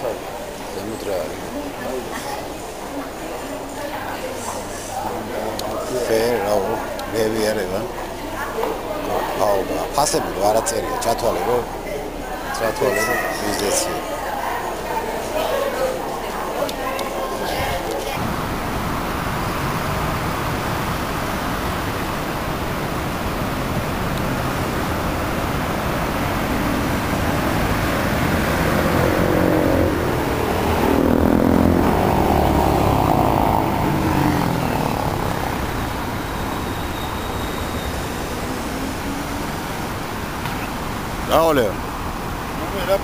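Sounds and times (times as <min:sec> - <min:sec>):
city road traffic: 0:00.0 - 0:43.0
vehicle engine passing by: 0:17.6 - 0:42.8.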